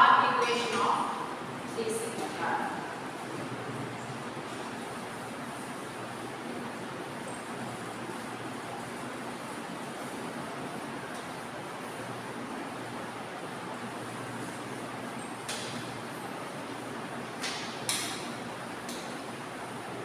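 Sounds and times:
classroom background hiss: 0:00.0 - 0:20.0.

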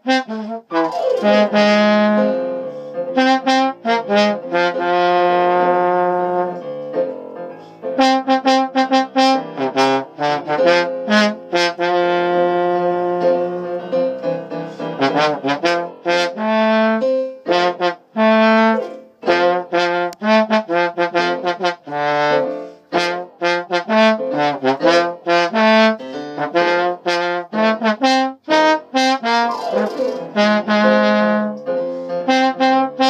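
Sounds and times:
trombone blues solo: 0:00.0 - 0:06.7, 0:08.0 - 0:13.8, 0:14.8 - 0:33.0
piano accompaniment: 0:00.0 - 0:33.0.

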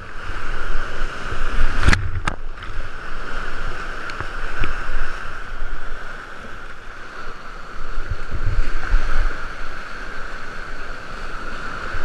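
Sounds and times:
rushing whitewater: 0:00.0 - 0:12.0
water splashing: 0:00.0 - 0:12.0
water thumping against boat: 0:01.6 - 0:02.8.

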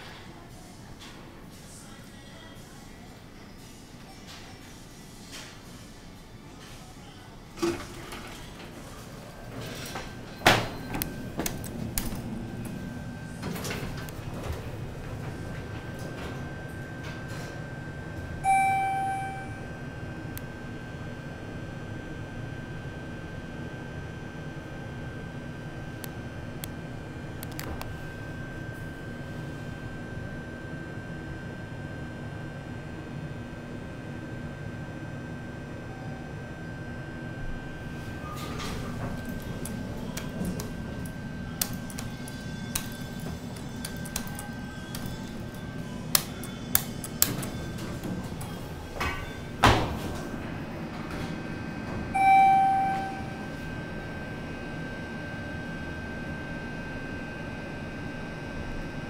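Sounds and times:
faint background music: 0:00.0 - 0:09.4
elevator hum: 0:06.0 - 0:59.0
elevator buzz chime: 0:18.4 - 0:20.0, 0:39.2 - 0:48.0, 0:51.6 - 0:55.6.

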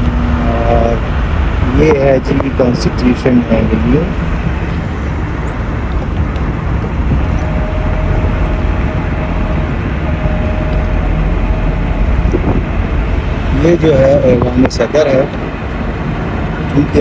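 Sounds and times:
car road noise from inside: 0:00.0 - 0:17.0
faint steady whine: 0:00.0 - 0:17.0.

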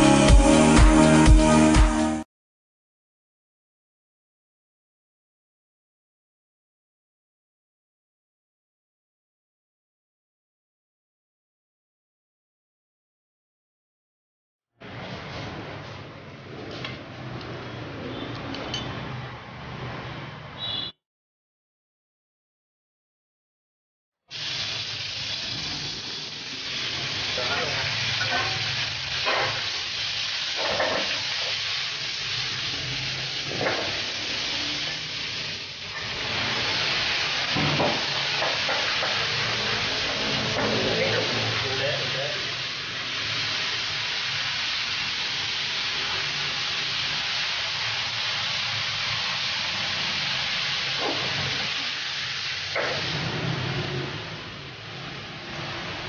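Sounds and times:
food sizzling in a pan: 0:24.3 - 0:56.0.

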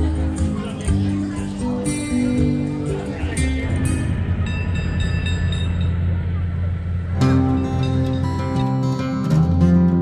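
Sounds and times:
bus engine idling: 0:00.0 - 0:10.0
faint high chiming: 0:04.0 - 0:06.7.

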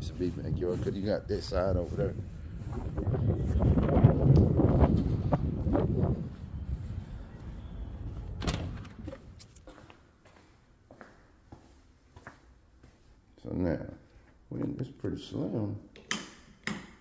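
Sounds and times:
wind buffeting microphone: 0:00.0 - 0:09.6.

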